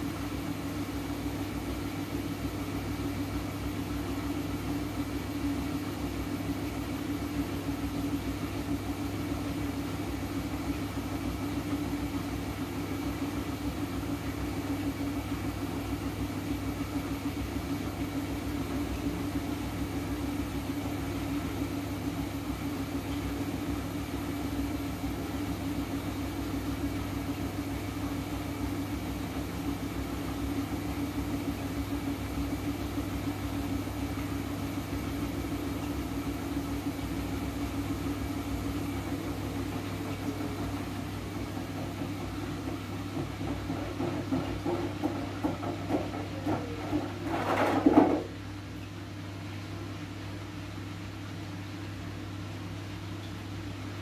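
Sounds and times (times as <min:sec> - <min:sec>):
washing machine spinning: 0:00.0 - 0:54.0.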